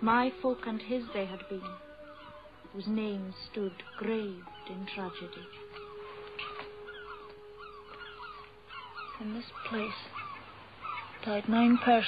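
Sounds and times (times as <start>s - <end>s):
seabirds calling: 0.0s - 12.0s.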